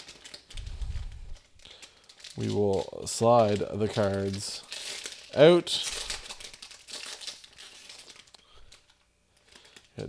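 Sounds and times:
foil wrapper crinkling: 0.0s - 10.0s
low rumble: 0.5s - 1.5s.

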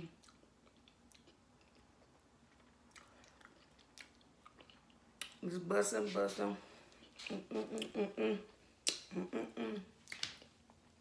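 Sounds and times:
faint chewing: 0.0s - 5.4s.

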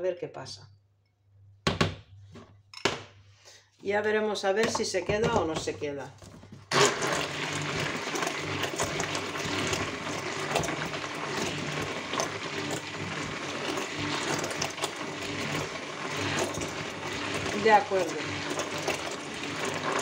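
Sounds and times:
stick blender whirring through liquid: 6.7s - 20.0s.

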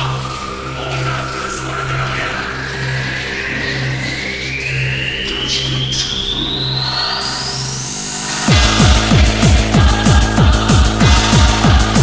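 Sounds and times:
rising sweep over noise: 0.0s - 12.0s
heavy kick drum: 8.5s - 12.0s.

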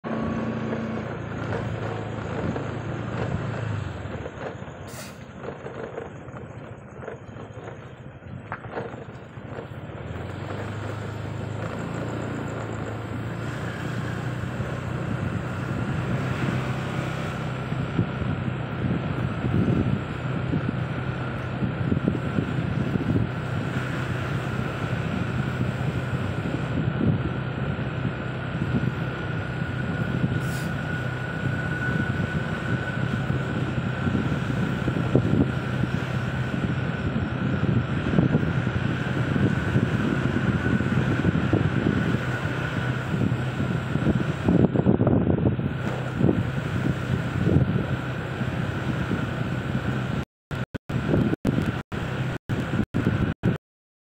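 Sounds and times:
car engine hum: 0.0s - 53.6s
tyre and road noise: 0.0s - 53.6s.

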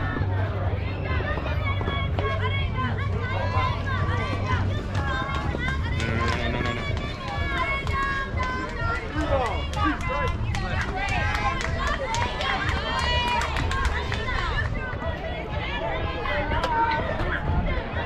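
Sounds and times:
sharp claps: 4.9s - 14.7s.

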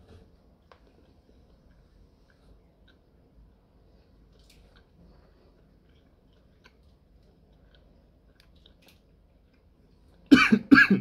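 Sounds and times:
mouth clicks chewing candy: 4.3s - 10.3s.

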